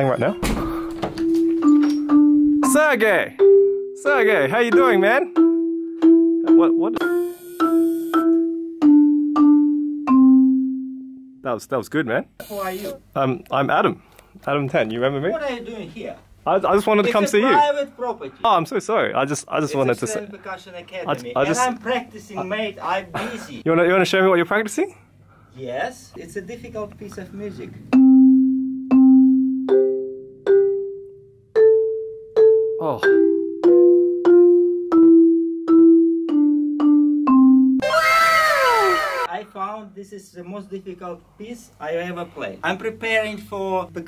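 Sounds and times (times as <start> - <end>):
marimba notes: 1.2 - 11.4, 27.9 - 37.8.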